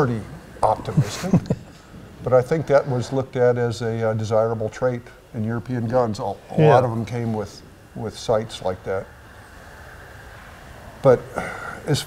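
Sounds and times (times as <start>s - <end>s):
faint high whine: 0.0s - 12.0s
low hum and hiss: 0.0s - 12.0s.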